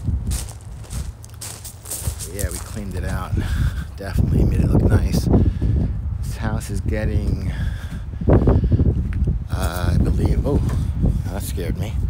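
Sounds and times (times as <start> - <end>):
footsteps on dry grass and leaves: 0.0 - 6.4, 7.3 - 10.7
wind rumble on microphone: 0.0 - 12.0.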